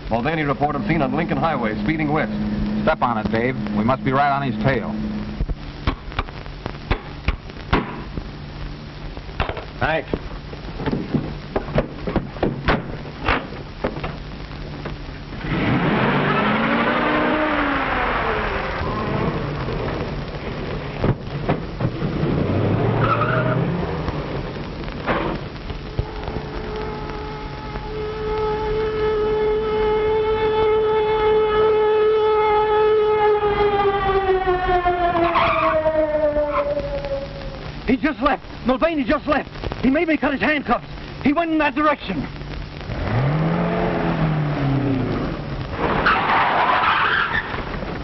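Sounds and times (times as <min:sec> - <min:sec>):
tires squealing: 0:15.4 - 0:20.0, 0:21.9 - 0:24.4, 0:35.0 - 0:37.4, 0:42.9 - 0:47.8
police siren: 0:16.1 - 0:20.7, 0:25.9 - 0:37.7.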